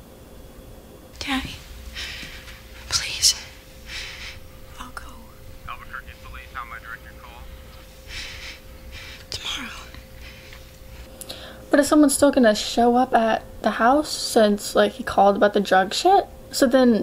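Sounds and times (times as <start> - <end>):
person whispering: 2.9 - 3.5, 9.3 - 10.0.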